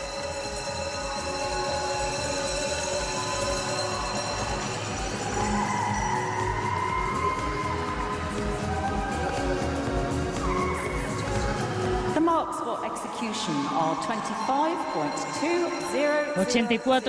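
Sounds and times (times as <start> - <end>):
music with steady beat: 0.0 - 12.4.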